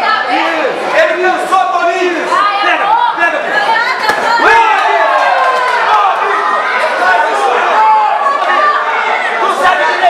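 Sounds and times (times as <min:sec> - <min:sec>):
crowd talking and calling out: 0:00.0 - 0:10.0.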